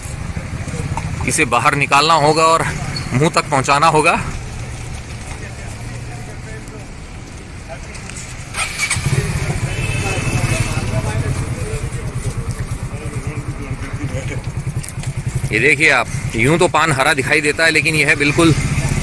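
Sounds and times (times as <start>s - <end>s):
vehicle engine pulsing rumble: 0.0s - 19.0s.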